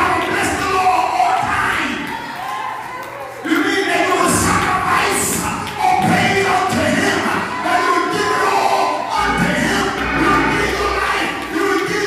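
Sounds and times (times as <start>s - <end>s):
gospel music: 0.0s - 12.0s
congregation singing: 7.0s - 12.0s.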